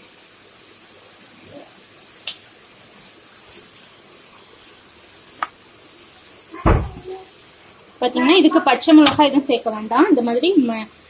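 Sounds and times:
vegetables frying in a pan: 0.0s - 11.0s
soft knock: 6.6s - 7.1s
heavy thump: 6.6s - 7.2s.

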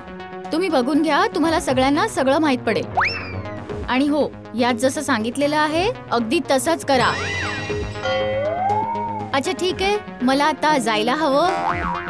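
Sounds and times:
background music: 0.0s - 12.0s
comic whistle-like slide: 3.0s - 3.6s, 7.1s - 9.4s.

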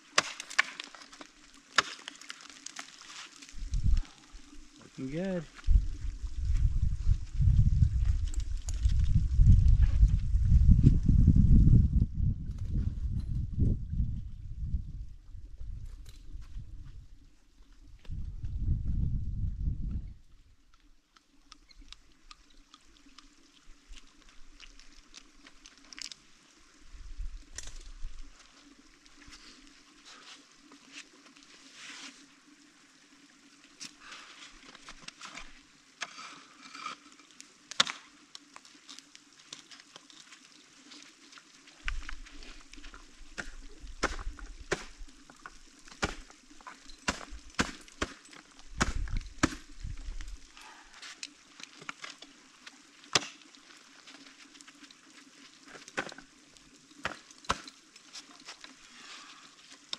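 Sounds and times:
ice tools striking ice: 0.0s - 3.3s, 43.4s - 45.0s, 45.9s - 49.7s, 57.0s - 57.8s
ice chips pattering: 0.0s - 4.8s
low microphone rumble: 5.7s - 16.0s.

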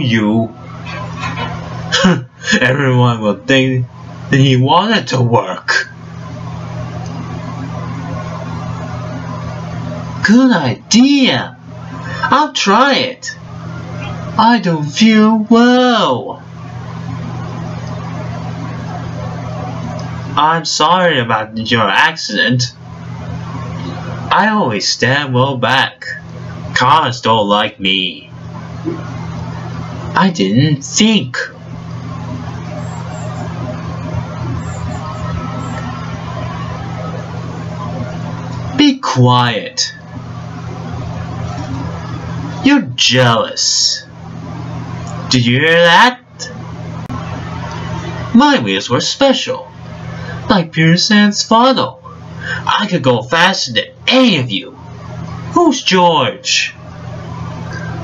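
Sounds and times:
low even hum: 0.0s - 58.0s.

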